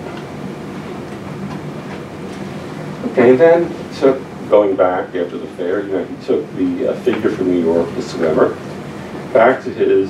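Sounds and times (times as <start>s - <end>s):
low room hum with hiss: 0.0s - 10.0s.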